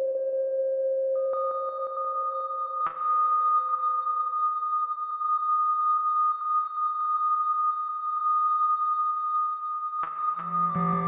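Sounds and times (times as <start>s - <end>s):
fainter lower synthesizer tone: 10.4s - 11.0s.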